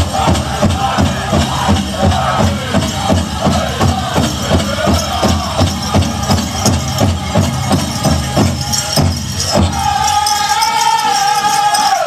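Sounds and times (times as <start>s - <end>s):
large drum steady beat: 0.0s - 10.9s
group high singing: 0.0s - 12.0s.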